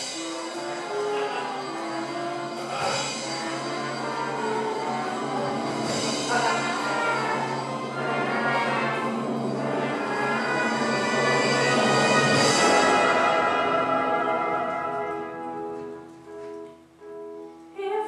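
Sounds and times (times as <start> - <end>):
pit orchestra playing: 0.0 - 17.2.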